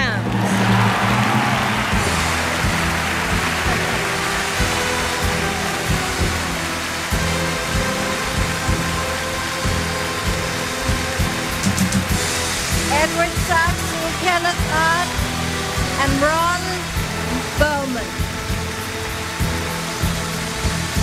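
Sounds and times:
audience applauding: 0:00.0 - 0:21.0
orchestral music: 0:00.0 - 0:21.0.

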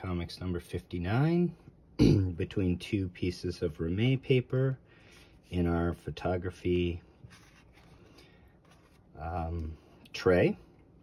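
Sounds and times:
paper cover handled: 0:07.2 - 0:09.1.

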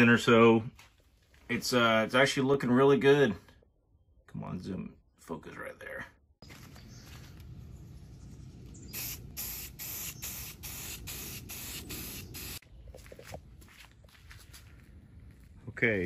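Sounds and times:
aerosol spray can hissing bursts: 0:08.9 - 0:12.6.

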